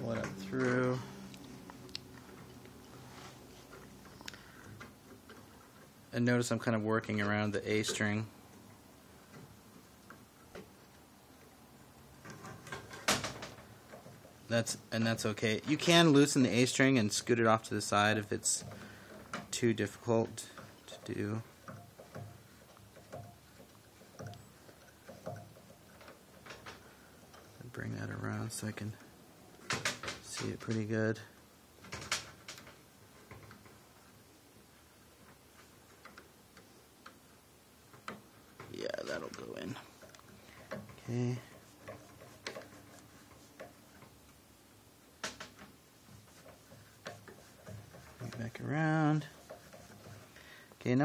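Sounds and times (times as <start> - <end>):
soft knocks of string winding: 12.2 - 30.9, 35.2 - 44.4, 45.2 - 50.9.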